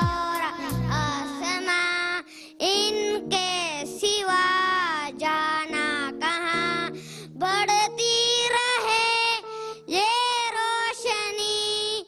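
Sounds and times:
boy singing into microphone: 0:00.0 - 0:12.0.

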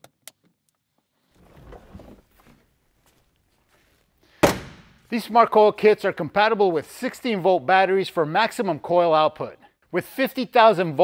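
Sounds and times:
loud thunk with ringing: 0:04.4 - 0:05.0.

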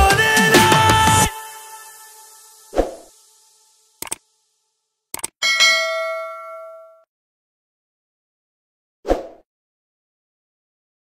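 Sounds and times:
quick clicks: 0:04.0 - 0:04.2, 0:05.1 - 0:05.4
notification bell ding: 0:05.4 - 0:07.0.

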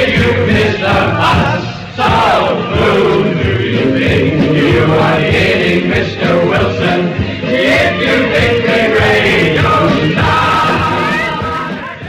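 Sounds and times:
men singing and shouting jingle: 0:00.0 - 0:12.0
musical backing: 0:00.0 - 0:12.0.

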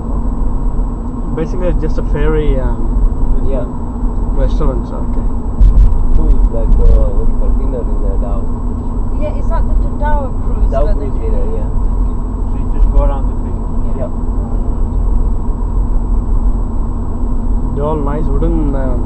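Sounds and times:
vehicle rumble from inside: 0:00.0 - 0:19.0.

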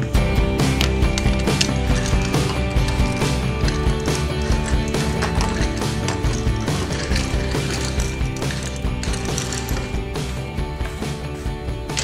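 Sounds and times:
toy car gear motor ratcheting: 0:00.8 - 0:10.1.

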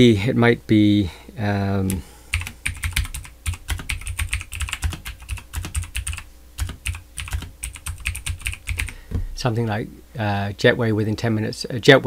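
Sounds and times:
computer keyboard typing: 0:01.9 - 0:09.0.

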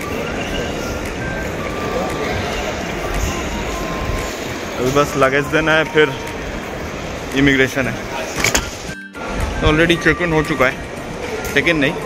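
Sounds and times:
terminal hall din: 0:00.0 - 0:12.0.

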